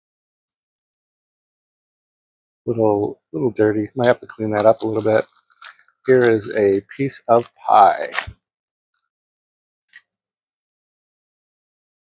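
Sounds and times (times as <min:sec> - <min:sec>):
plastic bag crinkling: 0:04.0 - 0:08.3
faint crackle: 0:04.0 - 0:08.4.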